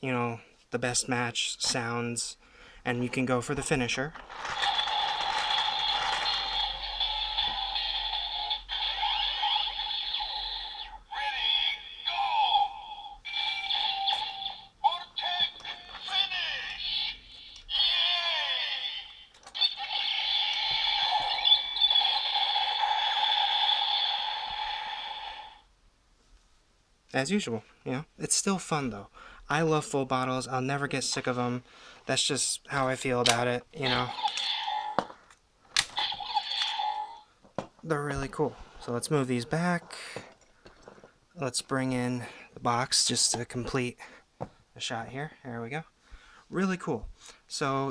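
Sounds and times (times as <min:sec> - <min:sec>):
toy electronic voice calls: 0:04.6 - 0:25.6, 0:33.8 - 0:35.2, 0:35.9 - 0:37.2
looping electronic toy tune: 0:13.3 - 0:14.8.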